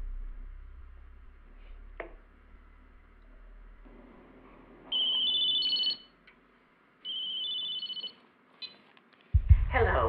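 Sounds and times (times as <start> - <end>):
telephone ringing electronically: 4.9 - 6.1, 7.1 - 8.2.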